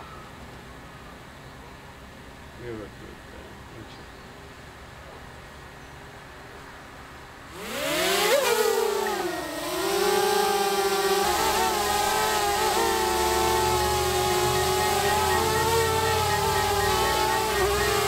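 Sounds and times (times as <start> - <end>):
drone propellers buzzing: 7.5 - 18.0.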